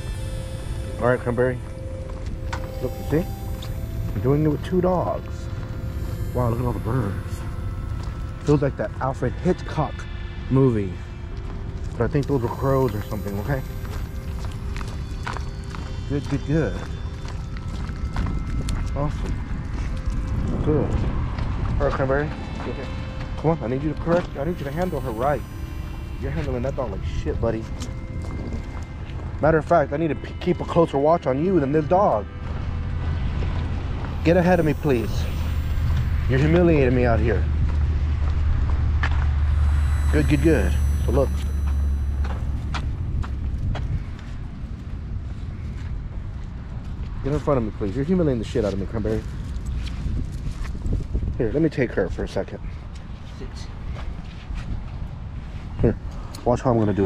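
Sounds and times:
low rumble on microphone: 32.1 - 56.4
footsteps on wet pavement: 35.9 - 39.7.

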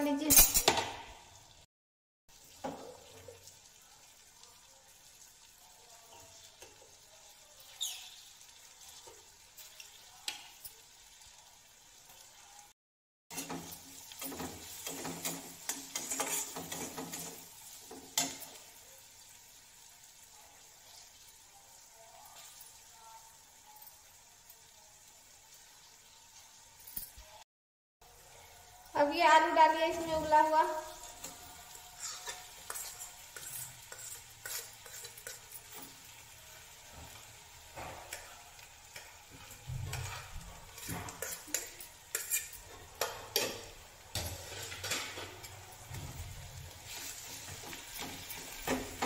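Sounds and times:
food frying in a pan: 0.0 - 1.7, 2.3 - 49.0
spatula scraping a pan: 13.3 - 18.8, 31.0 - 49.0.

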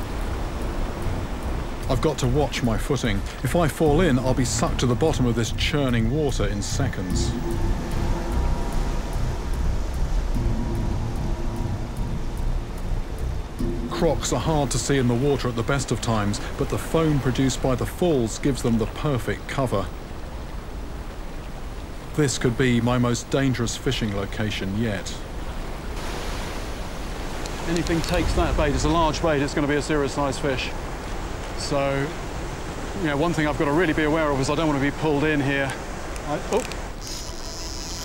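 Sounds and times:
background music low note: 0.0 - 20.6
faint ticking: 0.0 - 24.5
waterfall roaring: 0.0 - 37.0.

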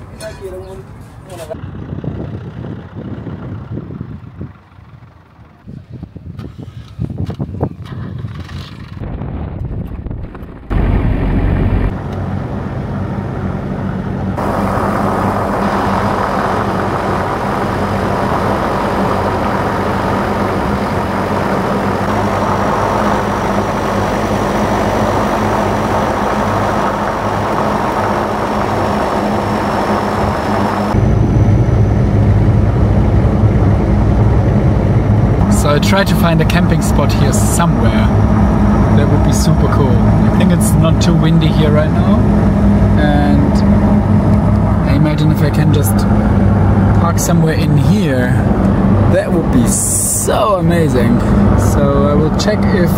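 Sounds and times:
pickup engine drone: 0.0 - 52.9.

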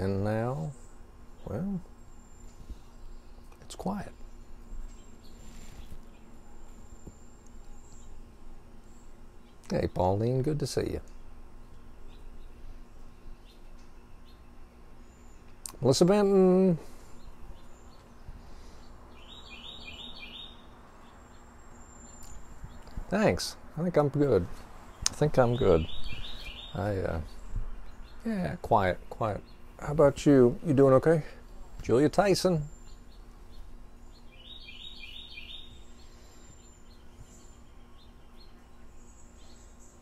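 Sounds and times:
faint steady hum: 0.0 - 40.0
songbird chirping: 0.0 - 40.0.

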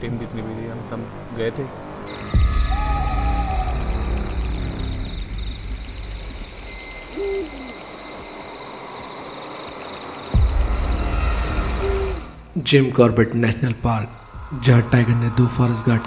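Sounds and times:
owl hoot: 2.3 - 5.3, 7.0 - 10.6, 11.2 - 12.4
low rumble: 13.4 - 16.0.

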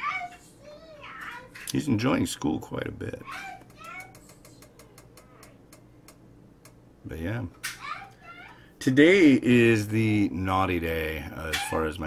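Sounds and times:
low steady hum: 0.0 - 12.0
faint rapid ticking: 3.6 - 6.9.

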